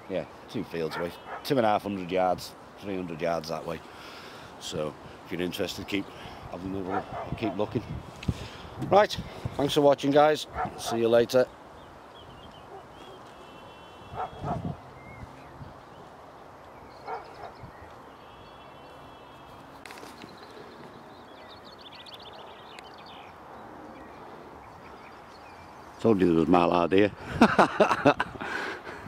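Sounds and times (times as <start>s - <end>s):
higher bird calls: 11.8s - 26.0s.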